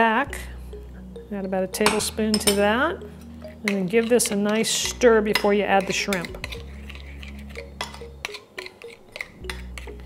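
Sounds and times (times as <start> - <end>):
light background music: 0.0 - 10.0
metal spoon stirring: 1.8 - 10.0
spoon clinking ceramic bowl: 1.8 - 10.0.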